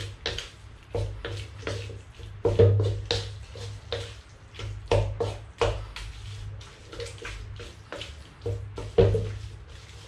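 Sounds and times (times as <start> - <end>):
spatula scraping against a wok: 0.0 - 10.0.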